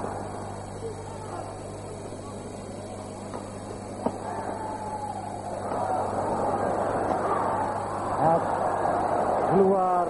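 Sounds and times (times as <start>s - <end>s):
crowd noise: 0.0s - 10.0s
steady low hum: 0.0s - 10.0s.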